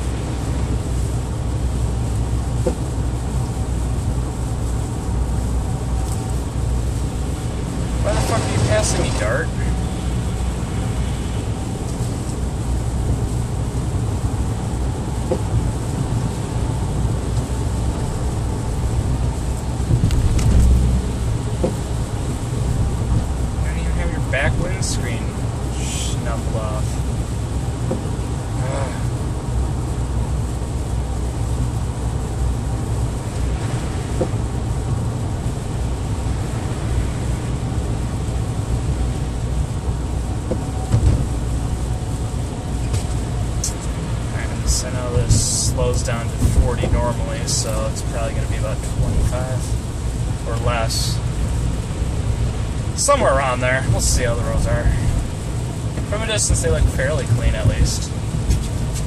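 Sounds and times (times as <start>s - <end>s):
car engine and road drone: 0.0s - 59.0s
low rumble: 0.0s - 59.0s
tyres on wet snowy road: 0.0s - 59.0s.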